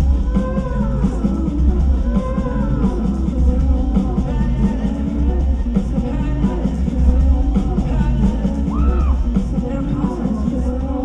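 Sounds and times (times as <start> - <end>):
deep steady bass line: 0.0 - 11.0
drum kit: 0.0 - 11.0.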